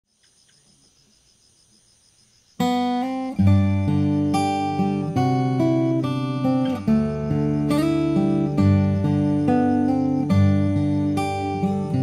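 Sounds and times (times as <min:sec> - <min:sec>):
insects chirring: 0:00.1 - 0:12.0
acoustic guitar chords: 0:02.6 - 0:12.0.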